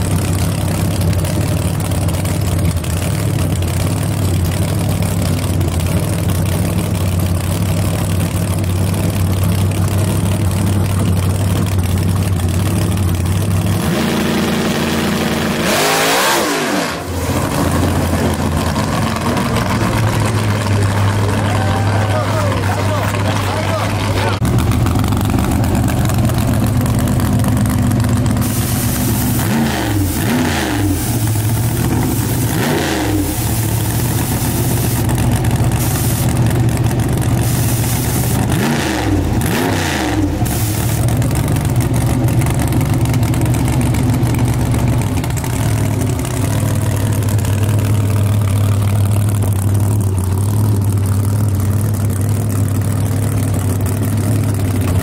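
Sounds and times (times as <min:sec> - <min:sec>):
race car engine idling and revving: 0:00.0 - 0:55.0.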